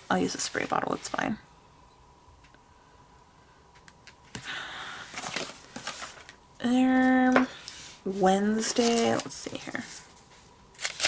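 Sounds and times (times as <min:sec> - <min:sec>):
paper sticker sheets rustling: 0:08.1 - 0:10.0, 0:10.8 - 0:11.0.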